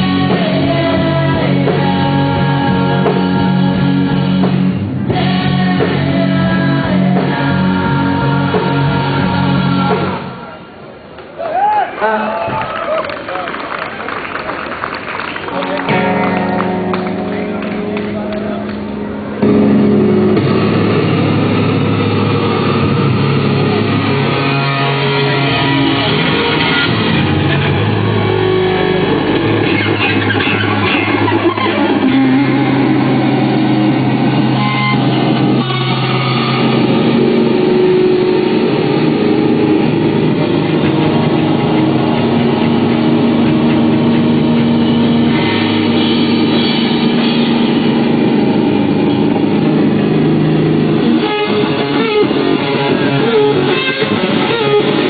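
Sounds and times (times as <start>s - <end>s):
live rock band playing loud: 0.0s - 10.5s, 15.3s - 55.0s.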